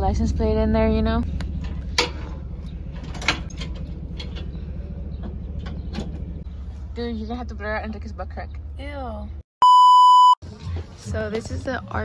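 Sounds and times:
vehicle engine idling: 0.0 - 9.4
sharp metallic knocks and clanks: 1.6 - 4.6.

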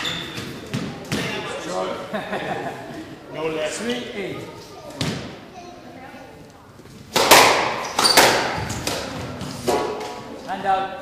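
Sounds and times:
squash ball cracking off rackets: 7.1 - 10.2.

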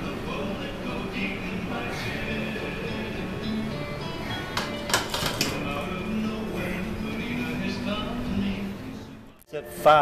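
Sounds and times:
music with vocals: 0.0 - 10.0.

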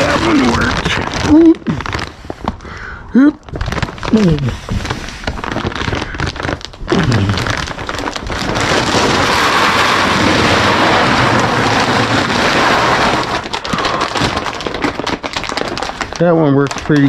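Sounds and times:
feed pellets pouring into bin: 7.2 - 17.0.

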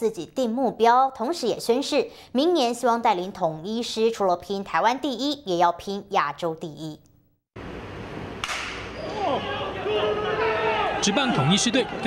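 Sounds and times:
ballpark ambience: 7.6 - 12.0
bat hitting baseball: 8.4 - 9.0.

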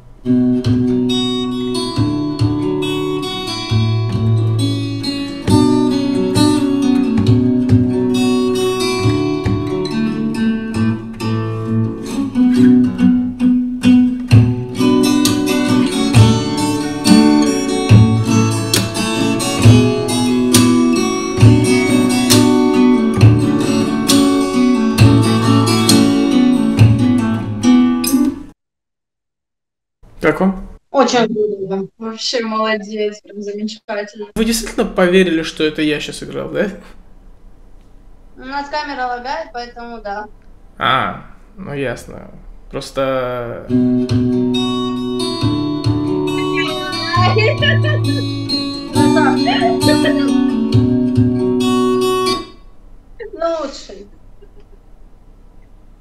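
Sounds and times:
fingerstyle acoustic guitar piece: 0.0 - 28.5, 43.7 - 52.7.

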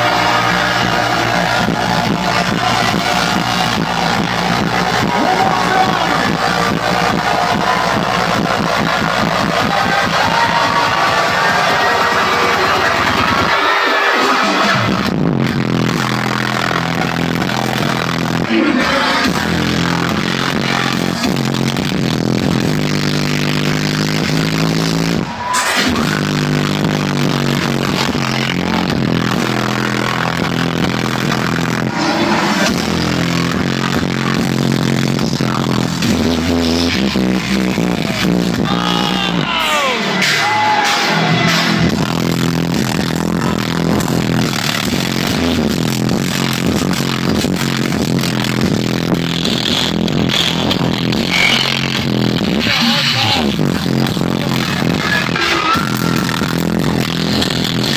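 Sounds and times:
loud distorted dubstep music: 0.0 - 57.9.

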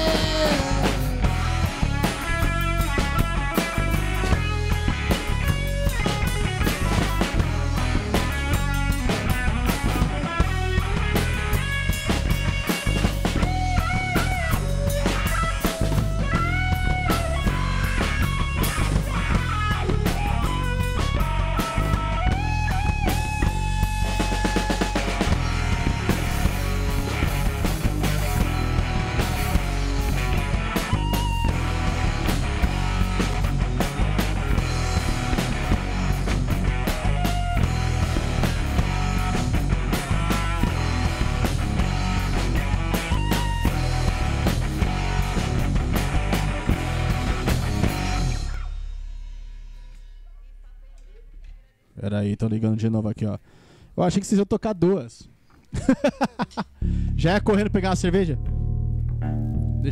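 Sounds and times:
live rock band playing: 0.0 - 49.8.

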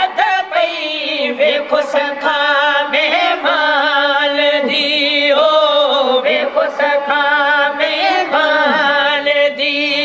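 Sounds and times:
men chanting through a microphone: 0.0 - 10.0.

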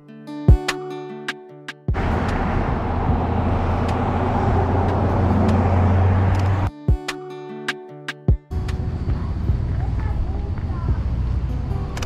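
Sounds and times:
cars driving past on highway: 1.9 - 6.7.

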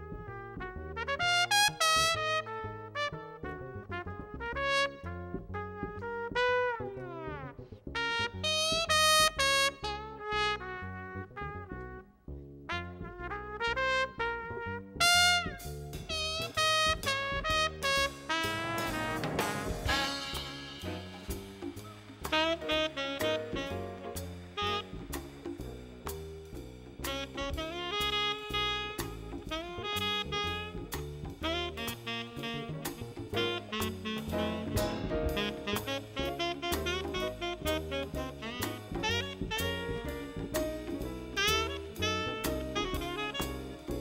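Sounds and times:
jazz trumpet solo: 0.0 - 44.0
upright bass: 0.0 - 44.0.

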